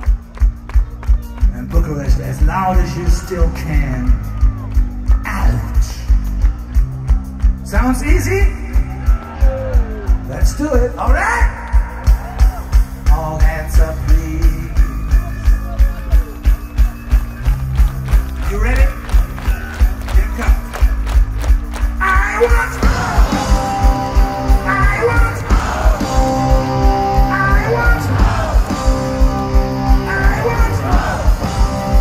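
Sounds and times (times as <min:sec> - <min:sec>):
live metal band playing: 0:00.0 - 0:32.0
steady drumbeat: 0:00.0 - 0:32.0
guitars: 0:11.8 - 0:32.0.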